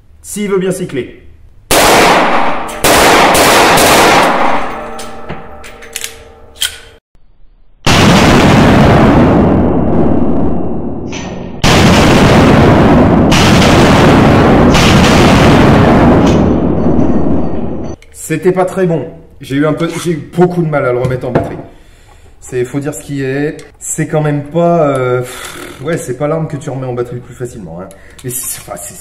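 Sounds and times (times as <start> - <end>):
loud pistol shots with echo: 1.7 - 4.8, 11.6 - 16.6
small metallic clicks: 5.0 - 7.0.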